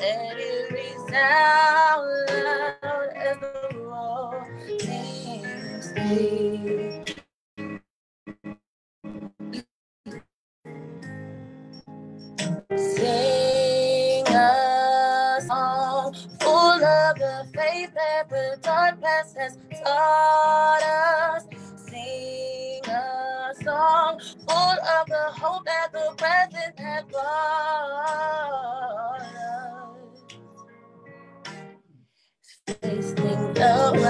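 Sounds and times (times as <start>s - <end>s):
woman singing with vibrato: 0.0s - 7.0s, 12.9s - 30.1s, 32.7s - 34.0s
guitar accompaniment: 32.8s - 34.0s.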